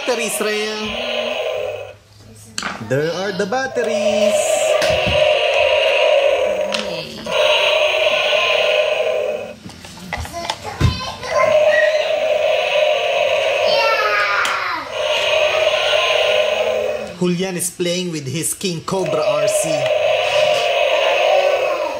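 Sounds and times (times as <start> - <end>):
toy dinosaur electronic roar: 0.0 - 2.0, 3.6 - 9.6, 11.3 - 17.2, 19.0 - 21.9.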